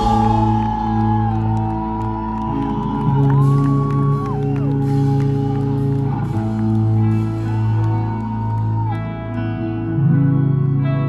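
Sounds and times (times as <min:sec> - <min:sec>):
crowd whooping and shouting: 0:00.0 - 0:09.8
sustained rock guitar chords: 0:00.0 - 0:11.0.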